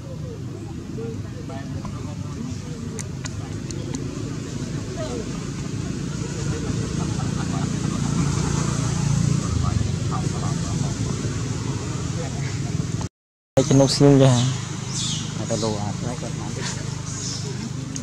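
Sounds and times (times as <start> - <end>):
low traffic rumble: 0.0 - 18.0
people talking indistinctly: 0.0 - 18.0.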